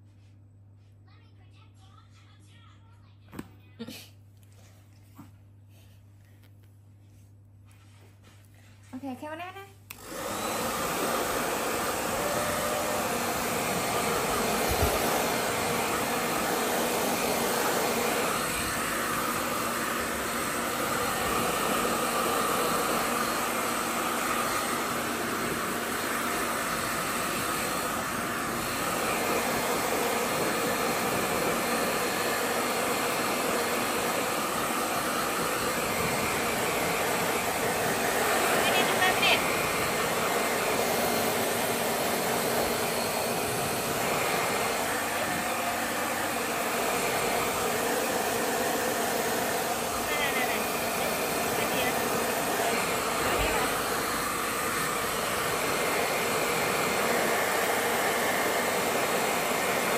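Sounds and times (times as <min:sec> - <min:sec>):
hair dryer running: 0:08.9 - 0:59.9.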